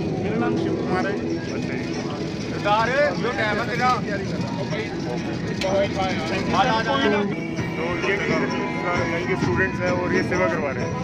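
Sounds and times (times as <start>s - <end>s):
crowd voices talking: 0.0s - 11.0s
street hum: 0.0s - 11.0s.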